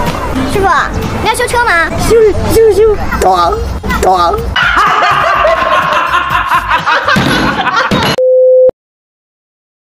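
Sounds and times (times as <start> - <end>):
laughter: 4.6 - 8.2.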